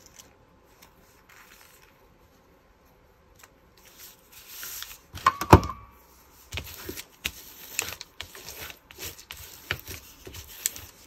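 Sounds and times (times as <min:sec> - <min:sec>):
paper rustling: 0:00.0 - 0:02.1, 0:03.3 - 0:05.3, 0:06.3 - 0:11.0.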